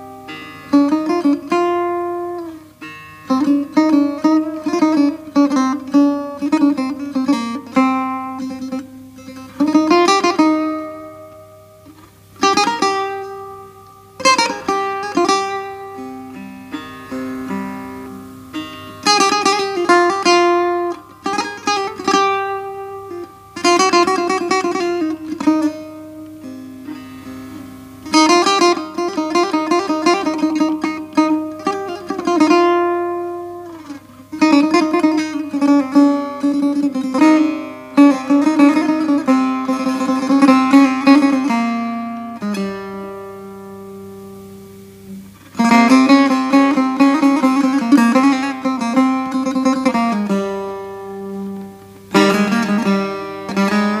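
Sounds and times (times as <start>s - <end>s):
plucked setar: 0.0s - 54.0s.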